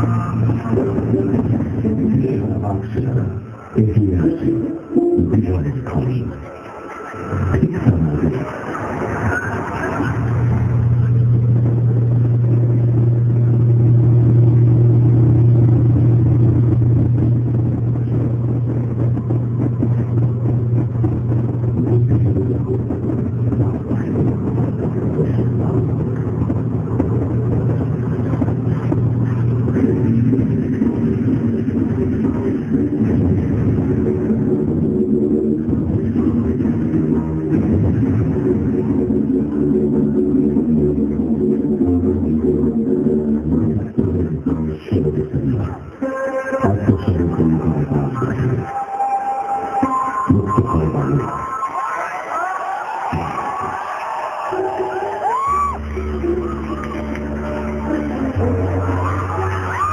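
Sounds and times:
buzzy drone with higher tones: 0.0s - 51.7s, 52.7s - 59.9s
low drone over loudspeakers: 0.0s - 59.9s.

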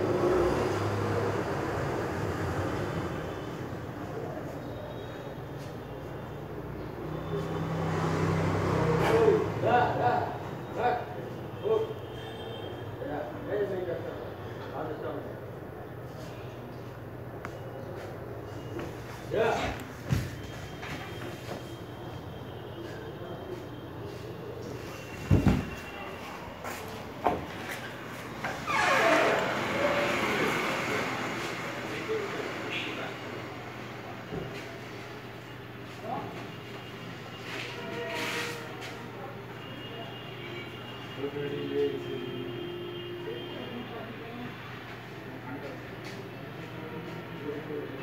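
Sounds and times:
vehicle passing: 7.6s - 9.7s, 29.0s - 33.8s.

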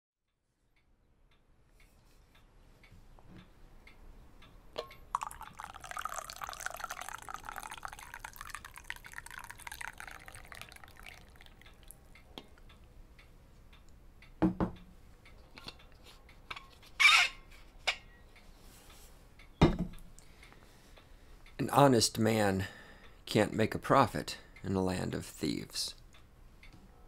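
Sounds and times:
liquid pouring with crackling hiss: 5.0s - 12.0s.

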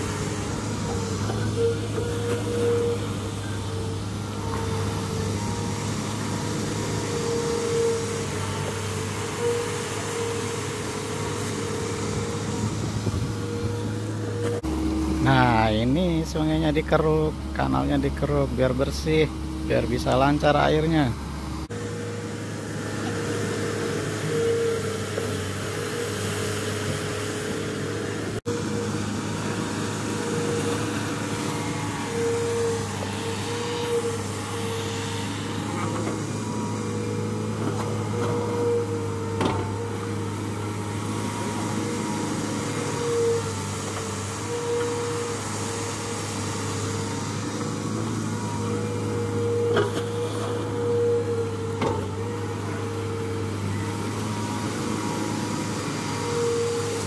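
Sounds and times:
whining tone: 0.0s - 26.1s
diesel excavator engine running: 0.0s - 57.0s.

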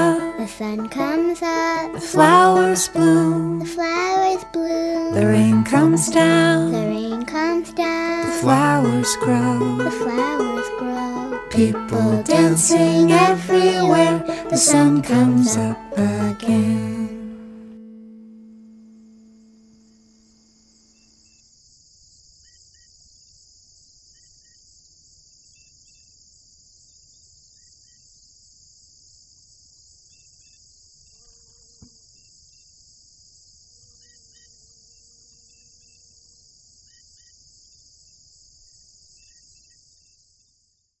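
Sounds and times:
song ending: 0.0s - 19.3s
crickets chirping: 0.0s - 40.8s.

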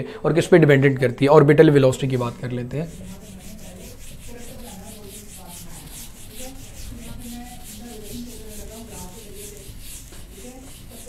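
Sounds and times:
duster rubbing a whiteboard: 1.8s - 11.0s.

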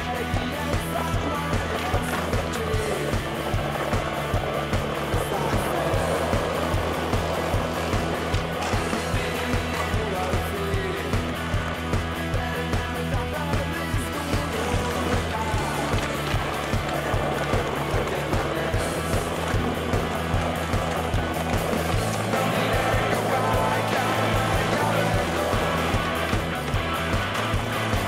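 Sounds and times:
rock music: 0.0s - 28.0s.

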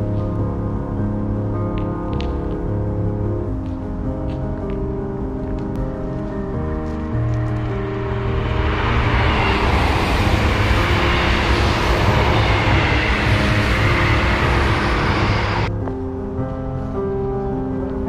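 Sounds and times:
background music: 0.0s - 18.0s
passenger train passing: 6.8s - 15.7s
faint falling whine: 7.0s - 15.7s.

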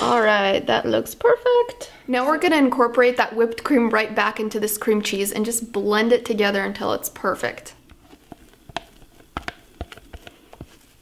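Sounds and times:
spatula tapping metal bowl: 8.7s - 10.7s.

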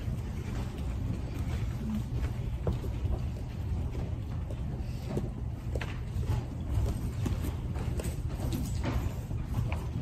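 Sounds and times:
footsteps and shuffling: 0.0s - 10.0s.

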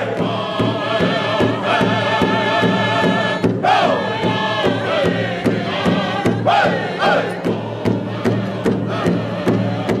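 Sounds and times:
high-pitched singing voices: 0.0s - 10.0s
large drum steady beat: 0.0s - 10.0s.

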